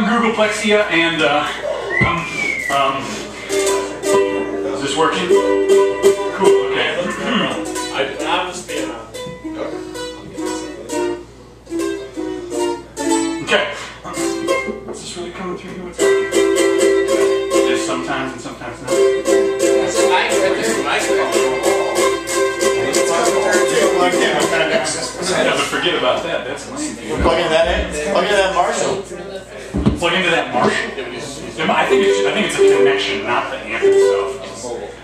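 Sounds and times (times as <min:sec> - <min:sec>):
ukulele picking and strumming: 0:03.0 - 0:25.6, 0:31.6 - 0:34.7.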